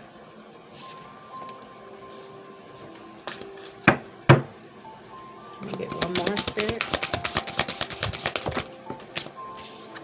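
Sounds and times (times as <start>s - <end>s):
cards being shuffled: 5.9s - 10.0s.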